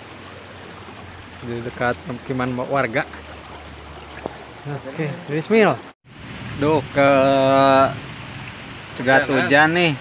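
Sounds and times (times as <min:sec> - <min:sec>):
heavy rain falling: 0:06.1 - 0:10.0.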